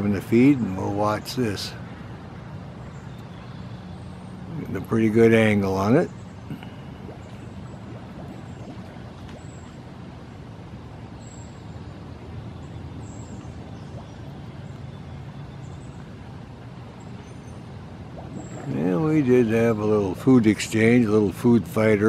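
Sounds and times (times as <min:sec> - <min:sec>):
distant road traffic rumble: 0:00.0 - 0:22.0.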